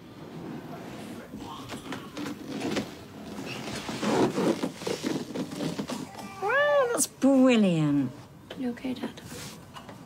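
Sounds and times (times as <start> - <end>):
person high-pitched exclamation: 6.1 - 7.1.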